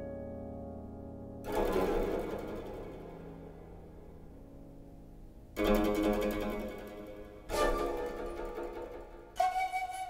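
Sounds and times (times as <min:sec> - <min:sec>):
piano chord: 0:00.0 - 0:07.7.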